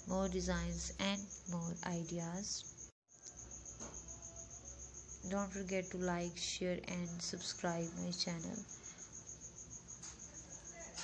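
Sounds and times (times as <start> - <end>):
cricket trilling: 0.0 - 11.0
low room hum: 0.0 - 11.0.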